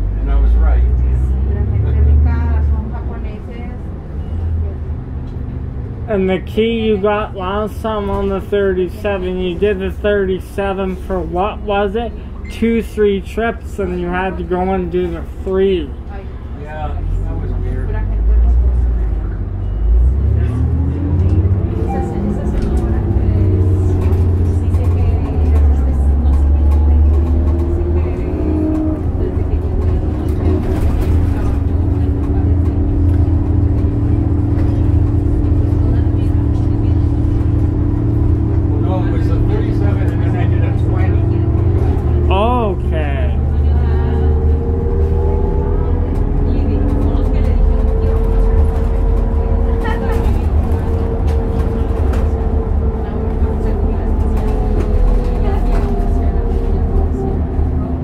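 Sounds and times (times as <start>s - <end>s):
bus engine drone with whine: 0.0s - 58.0s.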